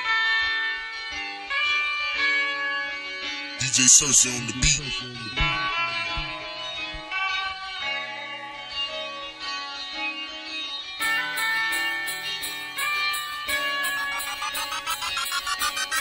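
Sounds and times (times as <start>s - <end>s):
hip-hop instrumental beat: 3.6s - 7.6s, 11.0s - 16.0s
plucked-string melody: 4.6s - 16.0s
fast even ticking: 11.7s - 16.0s.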